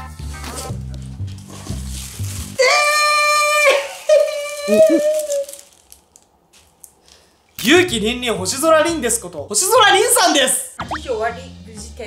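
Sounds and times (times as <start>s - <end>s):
excited voices calling: 4.4s - 5.4s.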